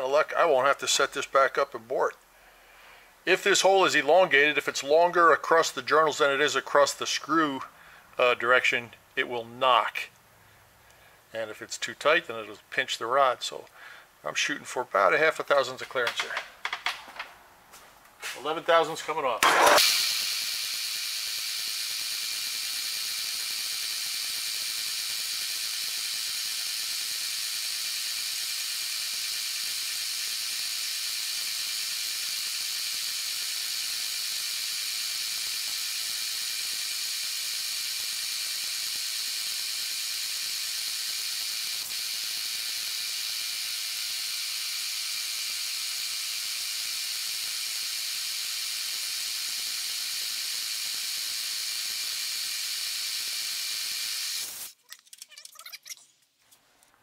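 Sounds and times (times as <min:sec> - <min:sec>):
milling machine whining: 0:19.4 - 0:30.1.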